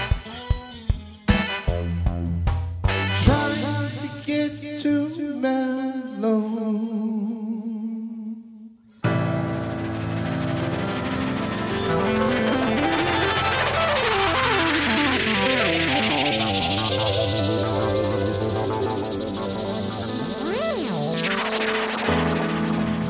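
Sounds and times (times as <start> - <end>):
live band with electric keyboard: 0.0 - 2.4, 9.0 - 23.0
rising hiss sweep: 8.9 - 23.0
sliding electronic effect tones: 9.0 - 23.0
held wavering note: 9.4 - 23.0.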